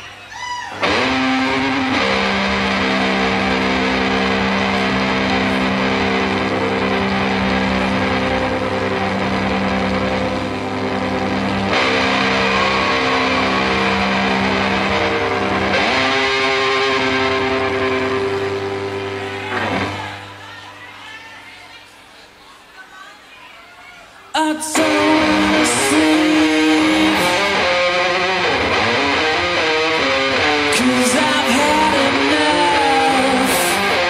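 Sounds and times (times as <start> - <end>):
distorted electric bass chords: 0.8 - 20.2.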